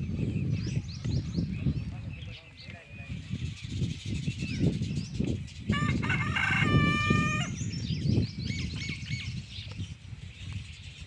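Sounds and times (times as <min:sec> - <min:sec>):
small birds chirping: 0:00.0 - 0:11.0
wind rumble on microphone: 0:00.0 - 0:11.0
rooster crowing: 0:05.7 - 0:07.5.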